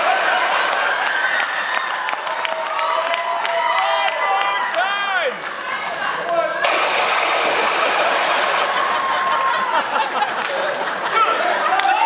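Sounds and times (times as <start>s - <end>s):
laser gun sound effect: 6.6s - 9.0s.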